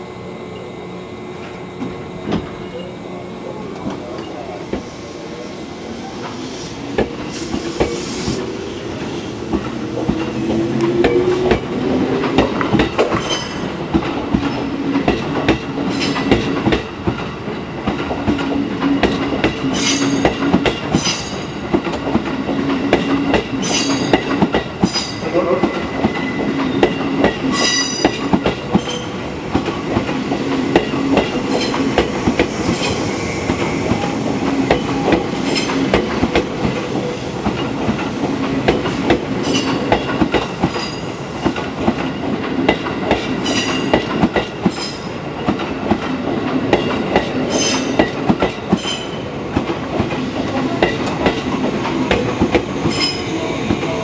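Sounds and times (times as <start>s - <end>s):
train running rumble: 0.0s - 54.0s
train wheels clacking over rail joints: 9.0s - 54.0s.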